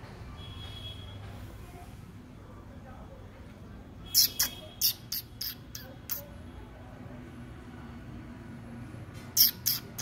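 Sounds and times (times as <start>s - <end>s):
person making kissing squeaks: 4.1s - 6.3s, 9.2s - 10.0s.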